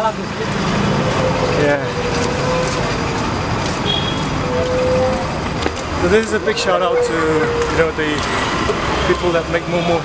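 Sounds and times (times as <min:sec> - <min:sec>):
road noise: 0:00.0 - 0:10.0
vehicle engines running: 0:00.0 - 0:10.0.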